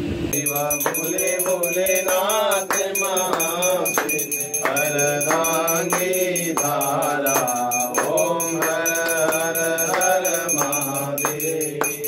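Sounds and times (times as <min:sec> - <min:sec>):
person singing a chant: 0:00.4 - 0:12.0.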